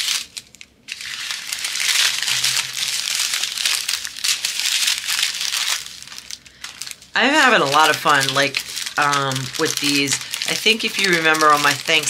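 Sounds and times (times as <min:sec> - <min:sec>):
dense crackly rustle: 0:00.0 - 0:12.0
plastic packaging crinkling: 0:00.0 - 0:12.0.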